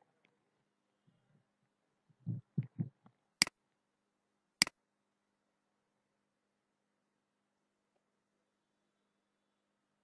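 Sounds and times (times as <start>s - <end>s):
soft low thumps: 2.2s - 3.0s.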